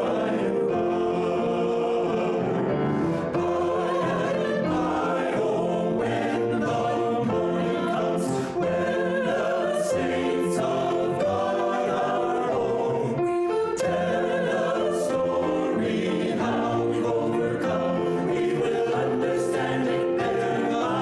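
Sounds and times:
choir singing a hymn: 0:00.0 - 0:21.0
piano accompaniment: 0:00.0 - 0:21.0.

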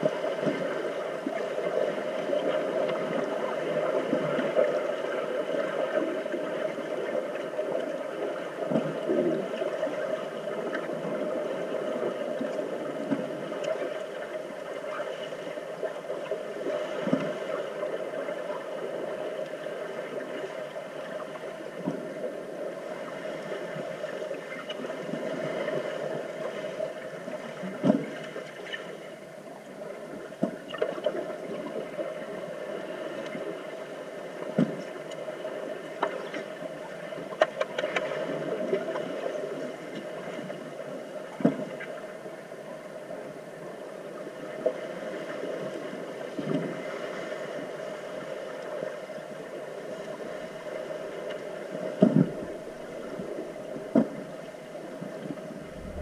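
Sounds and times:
muffled underwater water rush: 0:00.0 - 0:56.0
underwater knocks and thuds: 0:52.0 - 0:53.2.

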